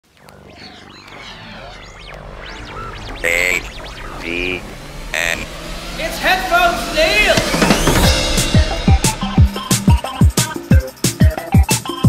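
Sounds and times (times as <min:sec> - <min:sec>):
electronic synthesizer music: 0:00.0 - 0:10.8
loud bright held tone: 0:01.0 - 0:10.7.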